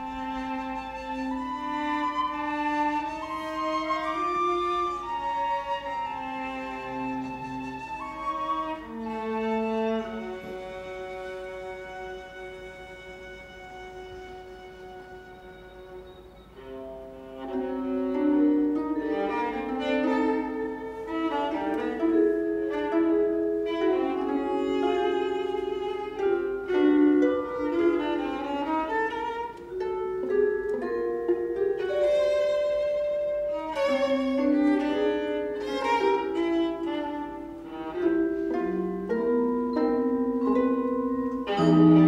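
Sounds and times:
orchestra with solo viola: 0.0 - 42.0.

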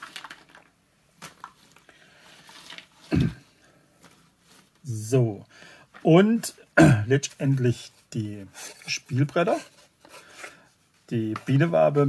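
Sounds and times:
game pieces clicking and rustling: 0.0 - 1.7.

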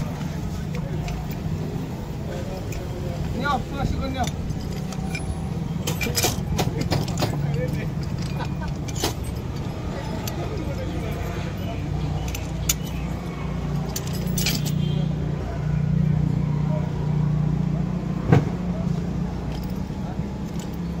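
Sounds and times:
metal fittings clinking: 0.7 - 14.9
sharp metal clicks: 3.9 - 11.1.

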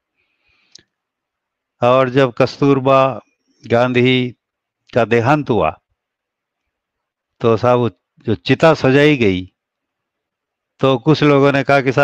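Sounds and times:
man speaking: 1.8 - 5.8, 7.4 - 9.5, 10.8 - 12.0.

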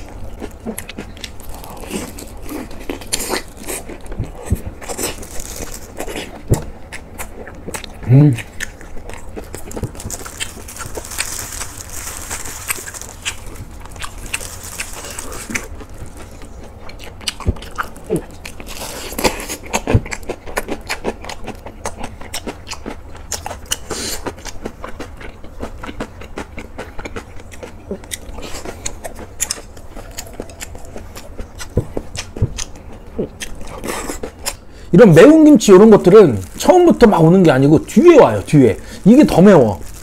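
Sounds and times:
wet crunchy chewing: 0.0 - 40.0.

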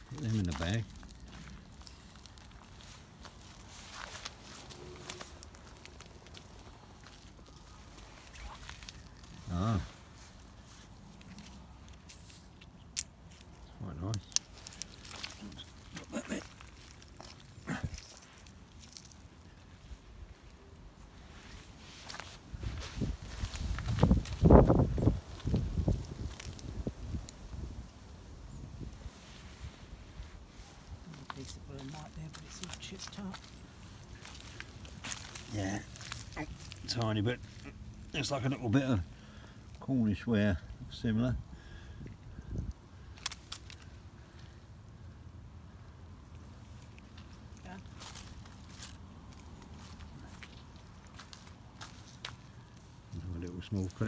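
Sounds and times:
footsteps in dry leaves: 0.0 - 12.6, 29.9 - 37.9, 47.1 - 53.1.

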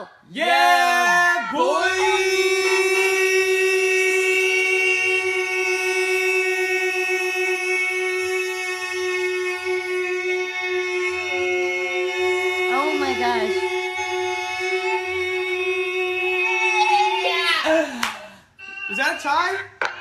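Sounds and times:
voices holding a long shout: 0.3 - 17.8.

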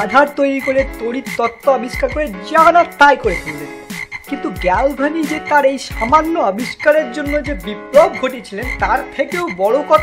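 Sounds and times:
frog croaking: 0.0 - 10.0.

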